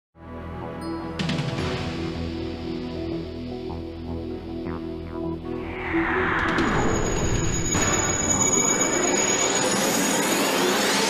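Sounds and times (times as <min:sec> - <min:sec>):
loud whooshing rush: 0:05.5 - 0:09.0
sweep rising in pitch: 0:05.5 - 0:09.1
thin high whistle: 0:05.7 - 0:09.8.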